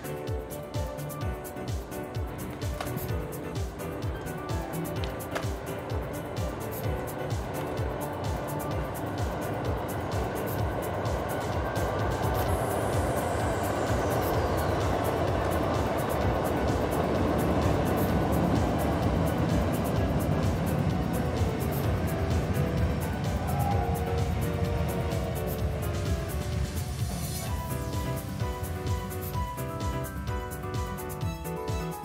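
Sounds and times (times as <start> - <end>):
background music: 0.0 - 32.0
electric train crossing steel bridge: 0.0 - 32.0.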